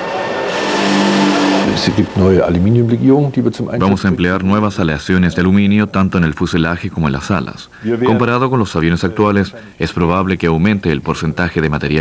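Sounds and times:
engine hiss: 0:00.0 - 0:03.8.

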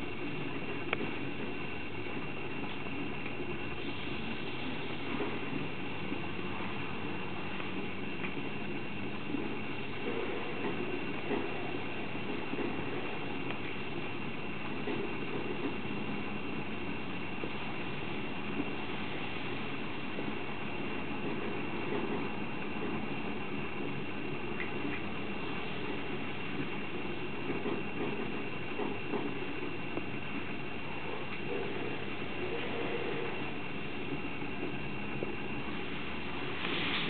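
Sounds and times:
faint high whine: 0:00.0 - 0:37.0
steady hiss: 0:00.0 - 0:37.0.

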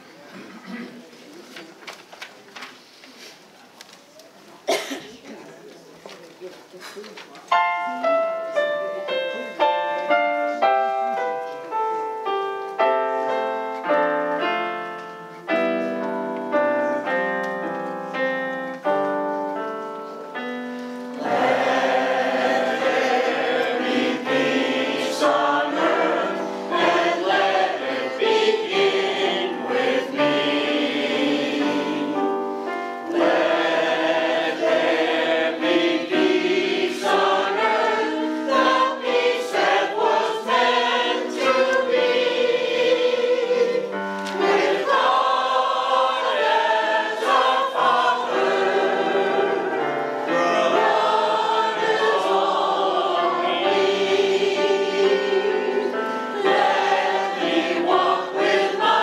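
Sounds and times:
digital piano: 0:07.5 - 0:59.0
mixed choir singing: 0:21.2 - 0:59.0.

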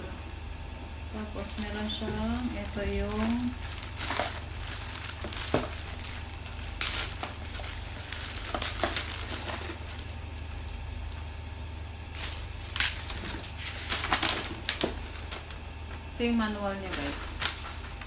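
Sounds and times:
plastic bags crinkling: 0:01.2 - 0:11.4, 0:12.0 - 0:18.0.

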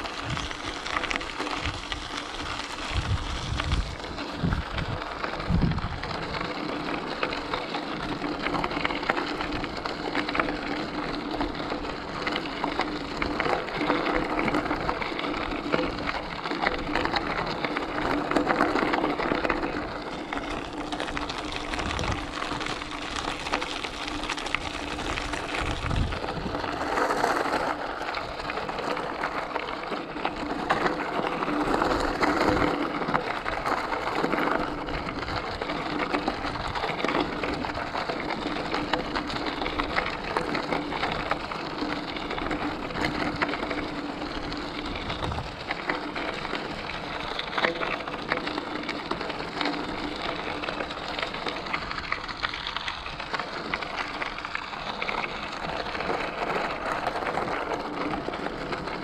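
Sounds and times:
bicycle tyres crunching gravel: 0:00.0 - 0:59.0.

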